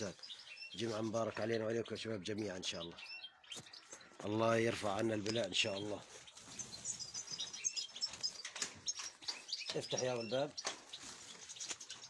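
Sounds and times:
finches chirping: 0:00.0 - 0:04.3, 0:05.0 - 0:12.0.

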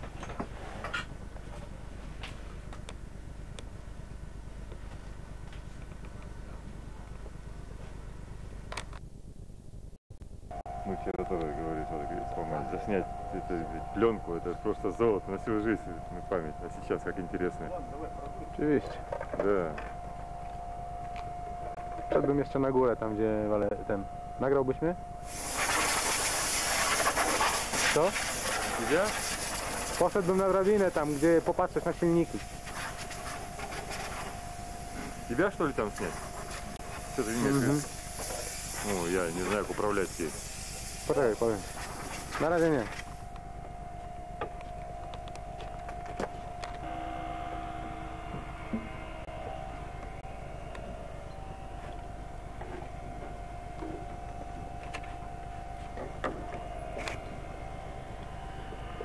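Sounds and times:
machine hum with whine: 0:00.0 - 0:59.0
loud high-pitched hiss: 0:25.2 - 0:43.3.

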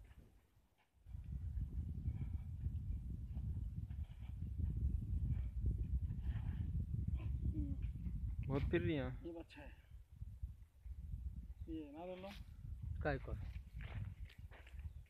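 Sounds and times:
wind buffeting microphone: 0:01.0 - 0:15.0.

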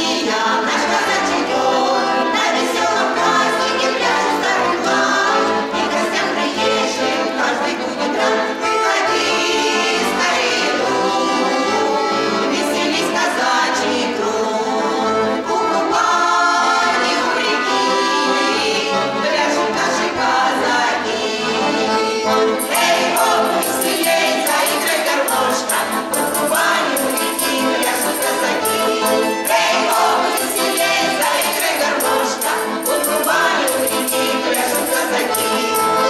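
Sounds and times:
accordion: 0:00.0 - 0:36.0
folk choir singing in harmony: 0:00.0 - 0:36.0.

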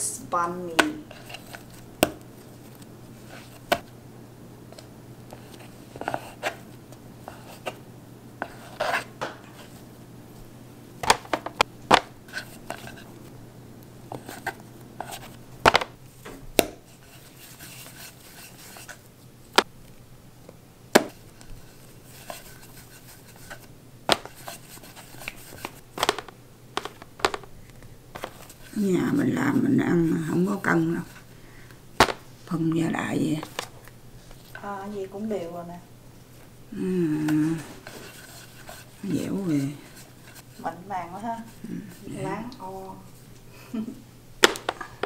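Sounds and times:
dough pieces set down: 0:23.3 - 0:27.5, 0:28.1 - 0:28.7, 0:32.0 - 0:32.3, 0:44.4 - 0:45.0.

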